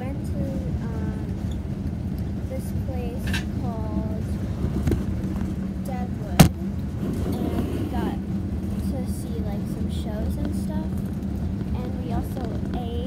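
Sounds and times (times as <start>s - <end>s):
engine and road noise drone: 0.0s - 13.0s
faint voices: 11.7s - 13.0s.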